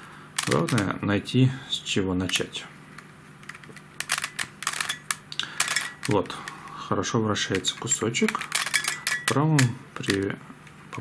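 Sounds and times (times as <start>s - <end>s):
plastic puzzle pieces clicking: 3.4s - 6.2s.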